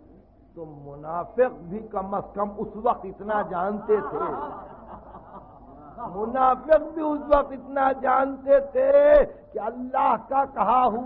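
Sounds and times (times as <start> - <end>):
audience murmuring and chuckling: 3.7 - 6.2.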